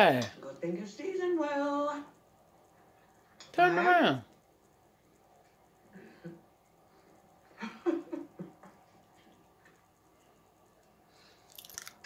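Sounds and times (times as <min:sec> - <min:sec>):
person chewing food: 0:11.3 - 0:12.0.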